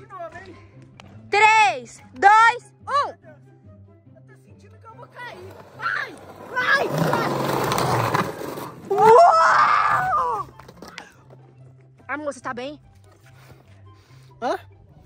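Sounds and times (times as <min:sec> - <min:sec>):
background music: 0:00.0 - 0:15.0
toy wheels rolling on concrete ramp: 0:05.4 - 0:09.3
person yelling: 0:08.9 - 0:10.4.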